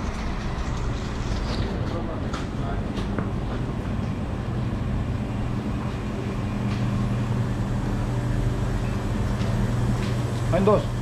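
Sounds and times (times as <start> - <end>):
refrigerator and air conditioning hum: 0.0 - 11.0.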